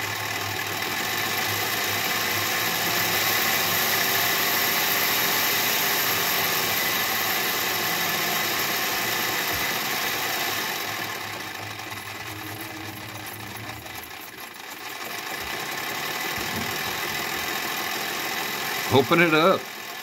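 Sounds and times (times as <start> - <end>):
toy steam engine mechanism clattering: 0.0 - 20.0.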